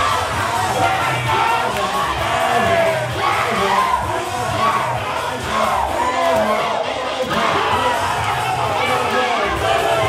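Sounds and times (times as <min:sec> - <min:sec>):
crowd shouting and cheering: 0:00.0 - 0:10.0
loud music: 0:00.0 - 0:10.0.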